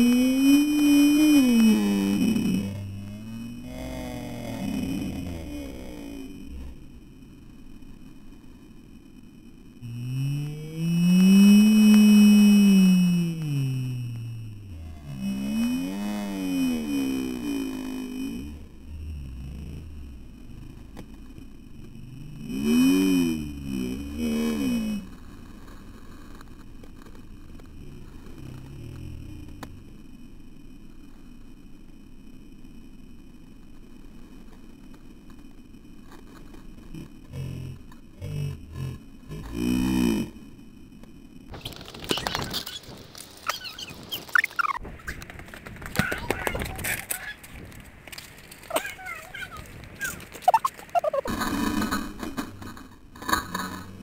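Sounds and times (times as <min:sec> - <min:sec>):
drawn-out wordless vocal: 0:00.0 - 0:07.0, 0:09.8 - 0:20.7, 0:36.9 - 0:40.4
low steady rumble: 0:00.0 - 0:41.6, 0:44.7 - 0:54.0.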